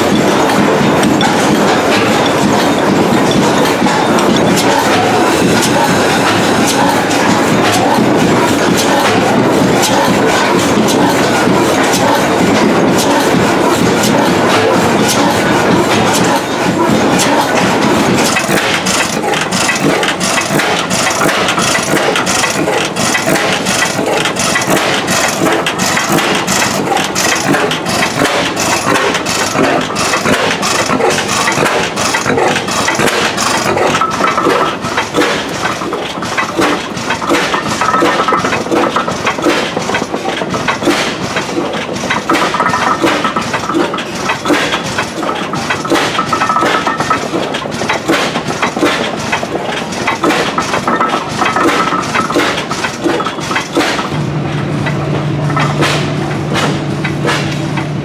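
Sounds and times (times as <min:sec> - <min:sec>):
stationary gas engines running: 0:00.0 - 0:58.0.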